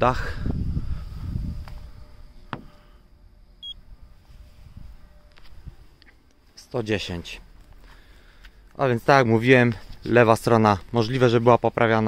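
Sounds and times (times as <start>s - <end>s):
short high beep: 3.6s - 3.8s.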